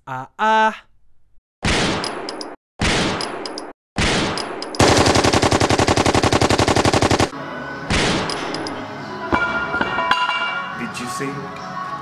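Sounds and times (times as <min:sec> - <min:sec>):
loud gunshots: 0:01.6 - 0:02.0, 0:02.8 - 0:03.2, 0:04.0 - 0:08.3
machine-gun burst: 0:04.1 - 0:07.3.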